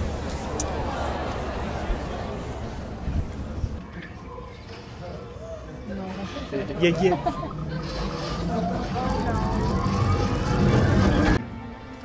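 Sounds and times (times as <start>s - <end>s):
rising machine whine: 8.4s - 11.4s.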